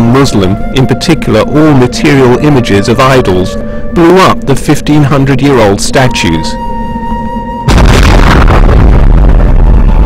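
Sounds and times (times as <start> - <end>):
deep rumble of collapsing rock: 7.7 - 10.0
loud explosion blast: 7.7 - 10.0.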